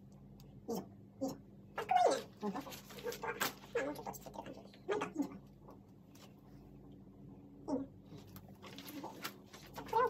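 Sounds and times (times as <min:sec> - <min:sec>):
animal whining cries: 0:00.7 - 0:04.2.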